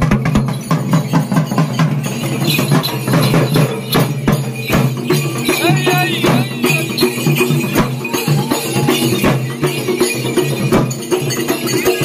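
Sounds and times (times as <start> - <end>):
barrel drum beaten with stick: 0.0 - 12.0.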